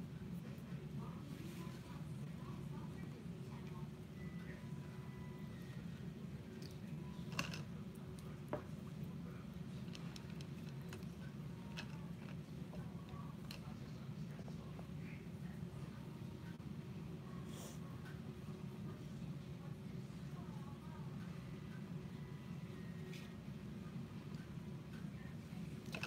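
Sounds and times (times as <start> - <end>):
low room hum: 0.0 - 26.0.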